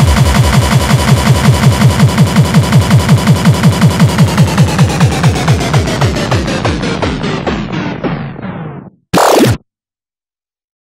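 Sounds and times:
rapid kick drums: 0:00.0 - 0:08.6.

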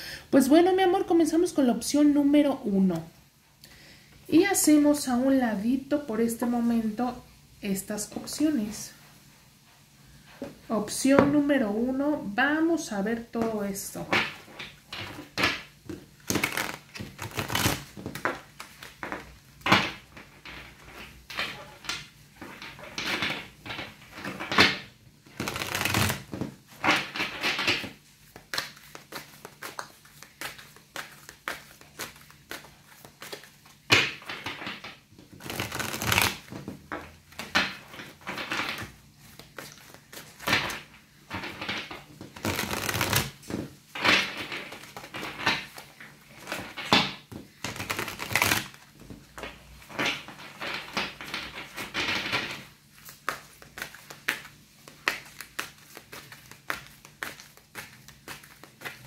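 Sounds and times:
tarot cards being shuffled: 0:13.6 - 0:59.0.

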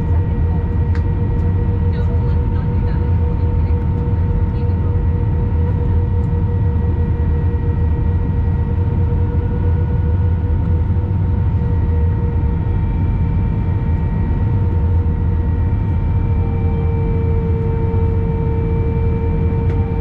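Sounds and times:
engine whines: 0:00.0 - 0:20.0
jet engines and airflow rumble: 0:00.0 - 0:20.0.

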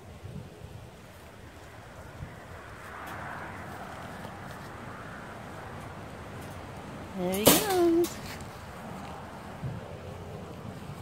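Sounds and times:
wind rumbling on microphone: 0:00.0 - 0:11.0
soft rustles and ticks: 0:02.8 - 0:04.9, 0:05.8 - 0:11.0.

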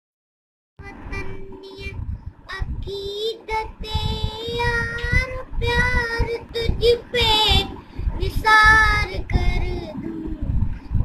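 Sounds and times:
child singing: 0:00.8 - 0:10.4.

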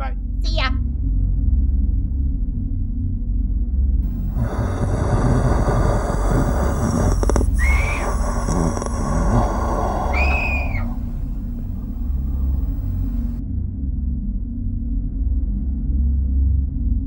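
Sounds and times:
deep rumbling drone: 0:04.0 - 0:13.4
hissing wash: 0:04.1 - 0:13.4
short whistling tones: 0:04.1 - 0:13.4.

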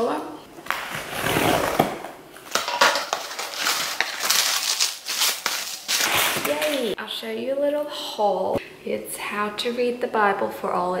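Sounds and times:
cardboard tearing and crinkling: 0:00.7 - 0:07.0.

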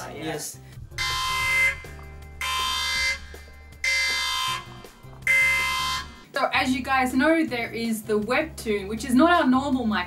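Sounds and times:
quiet background music: 0:00.0 - 0:10.0
alarm-like buzzer blasts: 0:00.9 - 0:06.3.

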